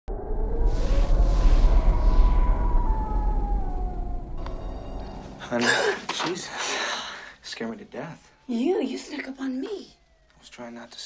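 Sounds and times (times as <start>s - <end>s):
heavy deep drone: 0.0s - 5.5s
tone gliding downward in pitch: 0.0s - 5.6s
whooshes of noise: 0.1s - 5.0s.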